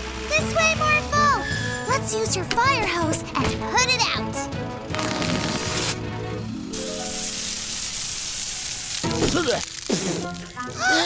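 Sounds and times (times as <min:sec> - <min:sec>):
background music: 0:00.0 - 0:11.0
cartoon water spray hiss: 0:06.7 - 0:11.0.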